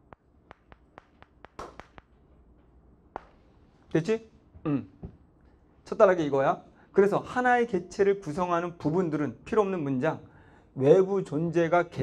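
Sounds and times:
chalk ticking on blackboard: 0:00.0 - 0:02.2.

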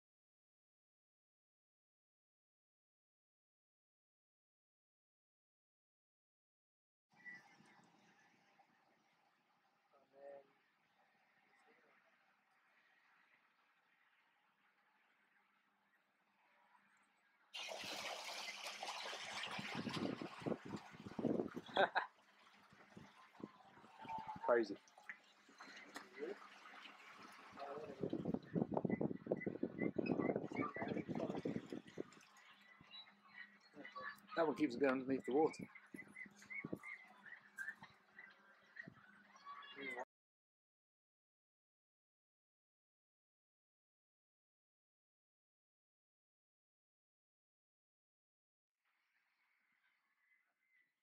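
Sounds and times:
geese splashing on water: 0:17.6 - 0:28.7, 0:30.3 - 0:35.0, 0:35.6 - 0:39.8
geese calling: 0:35.4 - 0:40.0.

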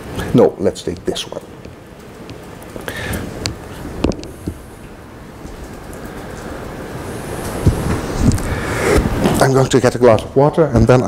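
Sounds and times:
rustling on microphone: 0:05.4 - 0:09.4.

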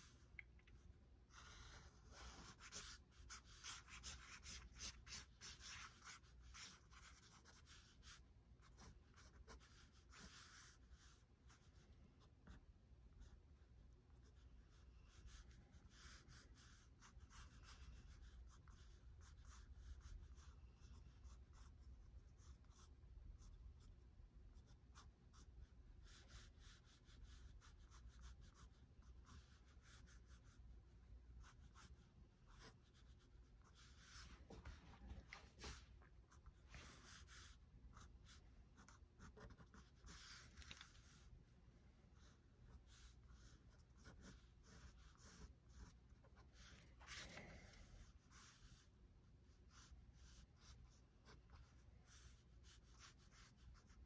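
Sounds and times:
pen scratching on paper: 0:00.0 - 0:41.3, 0:42.2 - 0:54.0.

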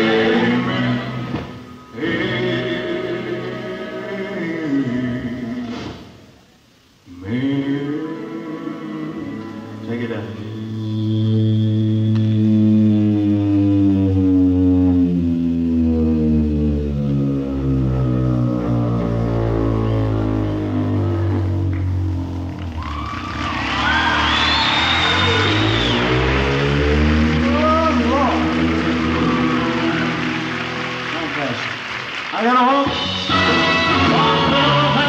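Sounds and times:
long held low chord: 0:08.2 - 0:22.6.

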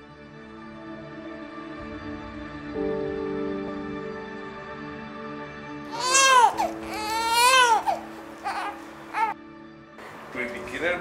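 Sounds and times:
baby crying: 0:05.9 - 0:09.4.

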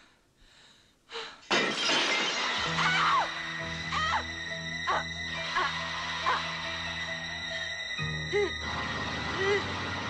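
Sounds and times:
glass window shattering: 0:01.5 - 0:03.2
horror score: 0:02.6 - 0:10.0
woman screaming: 0:02.8 - 0:04.3.

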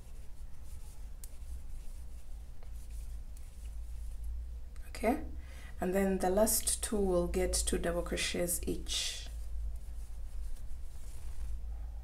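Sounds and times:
yarn rubbing over crochet hook: 0:00.0 - 0:04.4.

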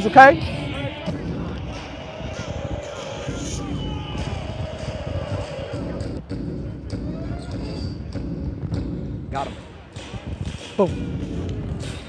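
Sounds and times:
steady low rumble: 0:00.3 - 0:12.0.

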